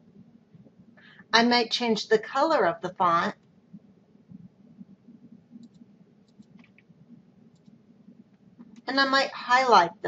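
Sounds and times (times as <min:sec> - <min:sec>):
low steady hum: 0:00.0 - 0:10.0
computer mouse clicks: 0:04.3 - 0:06.9, 0:07.5 - 0:08.9.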